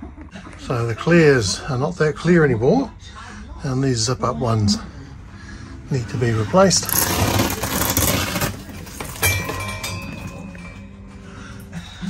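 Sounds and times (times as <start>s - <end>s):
vinyl panel rustling and crinkling: 6.8s - 10.0s.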